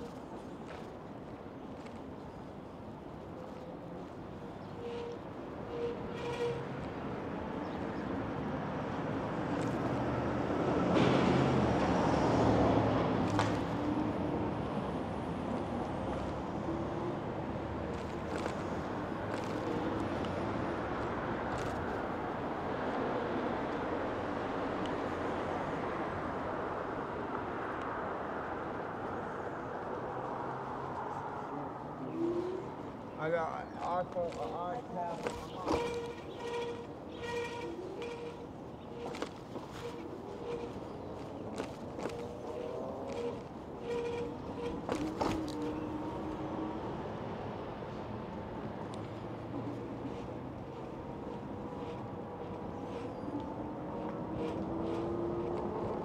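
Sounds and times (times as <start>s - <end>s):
street traffic: 0.0s - 56.0s
vehicle passing: 30.0s - 56.0s.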